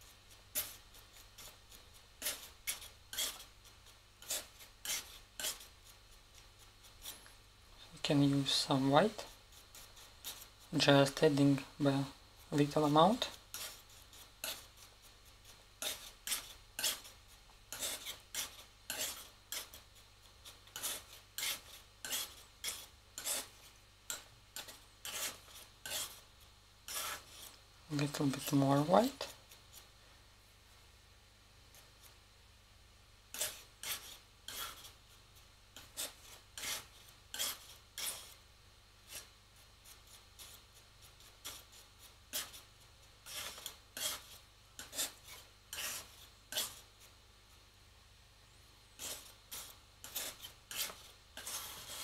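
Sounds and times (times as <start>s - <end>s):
palette knife scraping paint: 0.3s - 29.9s, 33.3s - 35.0s, 35.8s - 38.4s, 39.0s - 47.2s, 49.0s - 52.0s.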